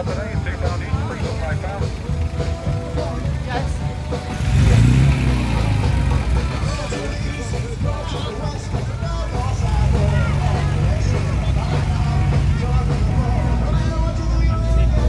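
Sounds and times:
car engine rumbling and revving: 0.0 - 15.0
crowd chatter: 0.0 - 15.0.

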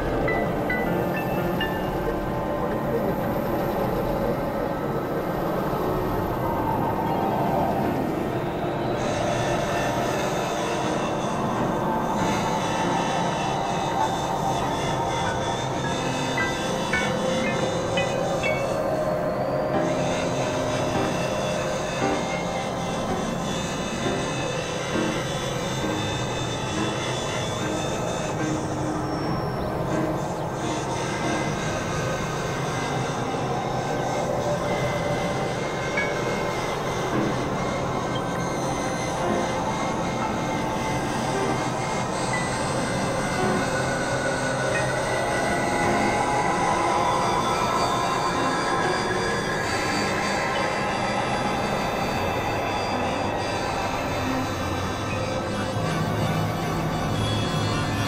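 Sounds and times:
experimental noise music drones: 0.0 - 58.0.

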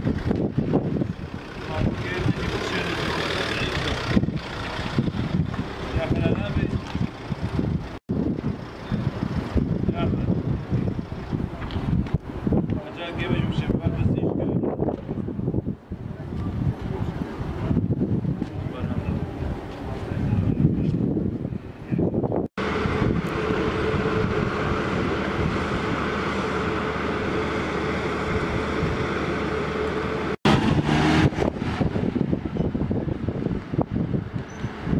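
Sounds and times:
wind buffeting microphone: 0.0 - 3.0, 3.6 - 34.9
vehicle engine running: 0.0 - 12.7, 22.6 - 34.9.

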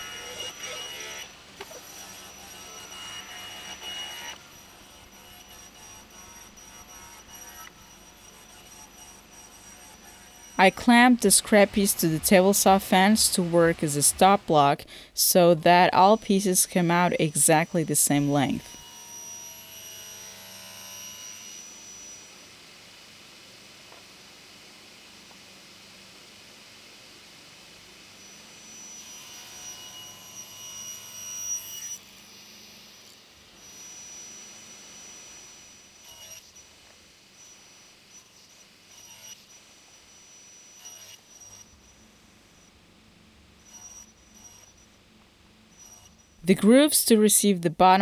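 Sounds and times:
table saw cutting wood: 0.0 - 22.6, 28.1 - 42.7, 43.6 - 44.9, 45.7 - 46.9.

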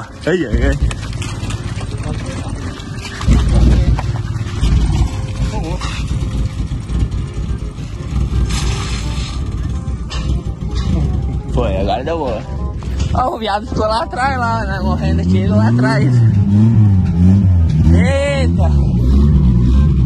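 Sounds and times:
continuous low rumble: 0.0 - 20.0
pickup truck engine starting: 0.0 - 20.0.

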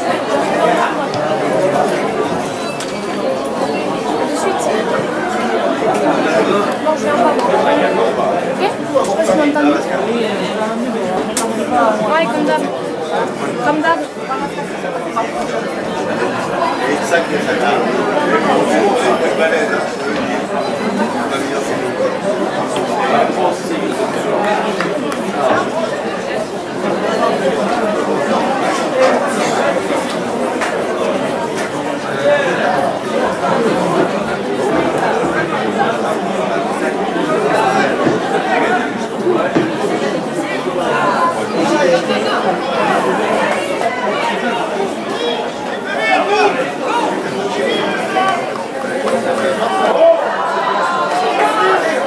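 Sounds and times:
chatter of many voices: 0.0 - 52.0.

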